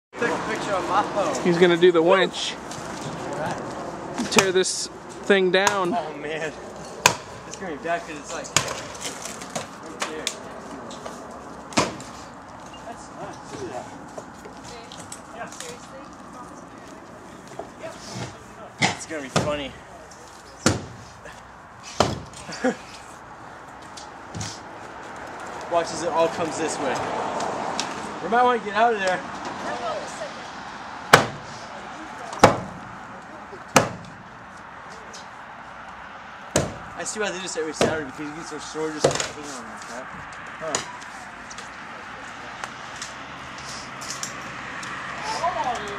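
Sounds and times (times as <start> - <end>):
demolition tool striking wood: 31.1 - 31.4.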